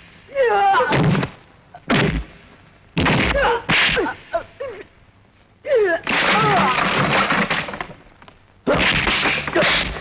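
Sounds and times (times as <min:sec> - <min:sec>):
wooden chairs crashing: 0:06.1 - 0:08.0.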